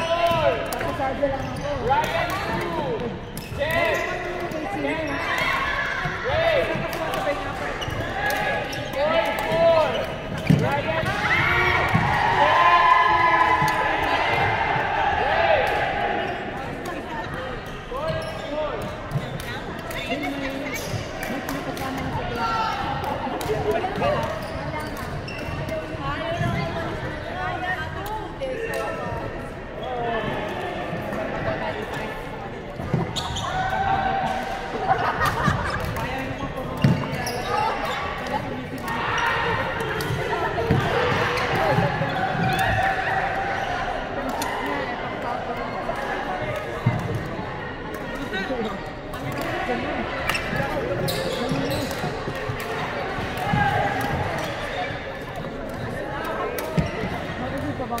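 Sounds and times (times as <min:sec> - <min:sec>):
sneakers squeaking on floor: 0:00.0 - 0:11.1, 0:16.2 - 0:21.2, 0:23.5 - 0:27.8, 0:31.6 - 0:33.7, 0:35.4 - 0:42.8, 0:50.3 - 0:57.5.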